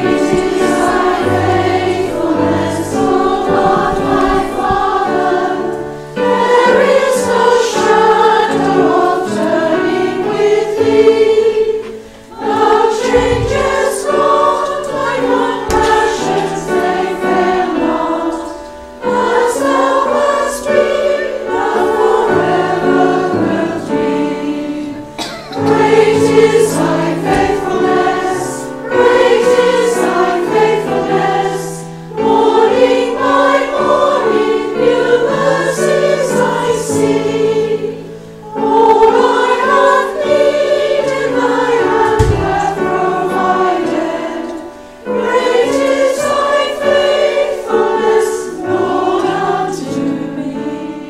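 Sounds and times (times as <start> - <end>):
steady musical accompaniment: 0.0 - 51.0
women singing a hymn: 0.0 - 51.0.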